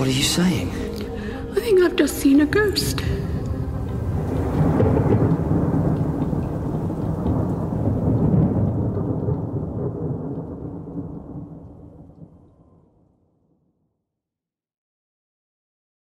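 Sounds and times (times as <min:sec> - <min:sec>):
low rumble of thunder: 0:00.0 - 0:13.0
rain: 0:00.0 - 0:13.3.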